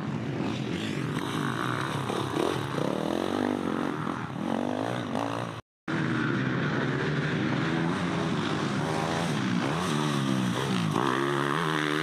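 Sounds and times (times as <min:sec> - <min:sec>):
off-road motorcycle engine: 0:00.0 - 0:12.0.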